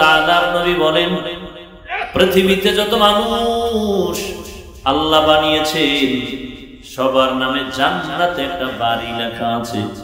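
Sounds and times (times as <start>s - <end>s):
man preaching in chant-like singing: 0.0s - 10.0s.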